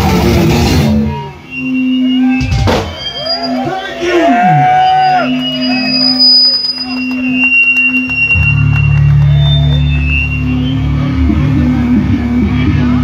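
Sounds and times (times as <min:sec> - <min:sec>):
electric guitar feedback: 0:00.0 - 0:13.0.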